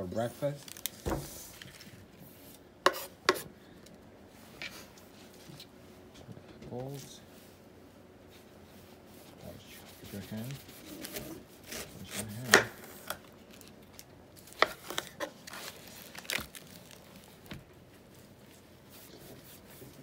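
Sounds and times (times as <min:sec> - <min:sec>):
knife slicing pineapple rind: 0:02.9 - 0:03.5, 0:10.2 - 0:13.2.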